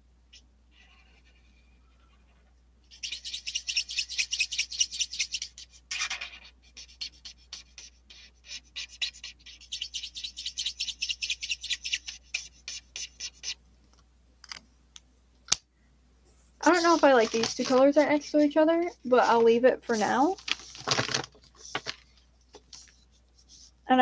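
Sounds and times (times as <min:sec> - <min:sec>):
marker scratching on paper: 0:02.9 - 0:13.6, 0:16.6 - 0:22.0, 0:22.6 - 0:23.8.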